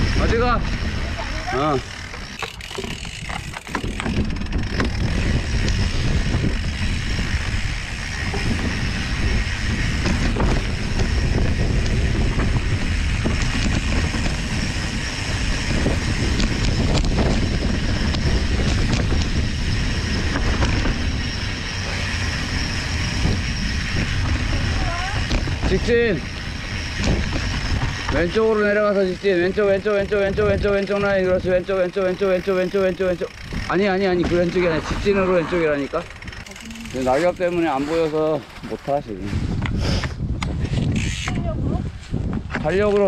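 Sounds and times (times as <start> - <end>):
bike tyres rumbling and rattling: 0.0 - 43.0
wind buffeting microphone: 0.0 - 43.0.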